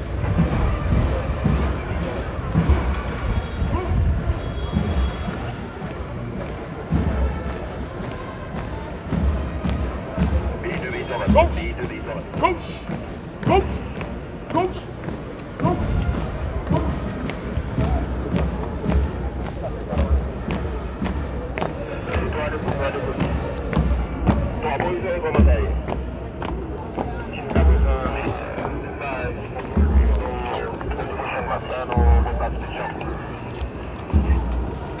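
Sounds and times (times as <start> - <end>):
soldiers marching on pavement: 0.0 - 35.0
voices in background: 0.0 - 35.0.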